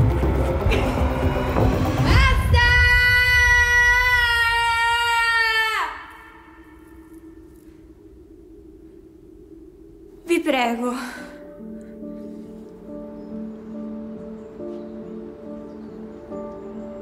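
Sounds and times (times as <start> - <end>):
woman screaming: 2.0 - 6.6.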